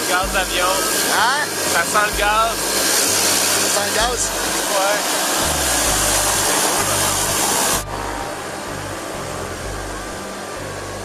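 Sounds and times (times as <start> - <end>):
music with steady bass line: 0.0 - 4.7, 5.4 - 11.0
jet engines rushing: 0.0 - 11.0
outdoor noise: 0.0 - 11.0.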